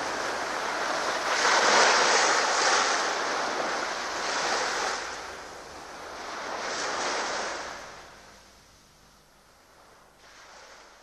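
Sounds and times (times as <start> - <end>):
breaking waves: 0.0 - 8.2, 9.8 - 11.0.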